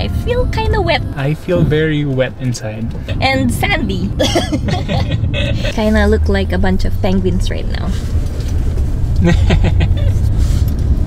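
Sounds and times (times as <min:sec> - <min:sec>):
car cabin road rumble: 0:00.0 - 0:11.0
people laughing: 0:04.2 - 0:06.0, 0:09.2 - 0:10.2.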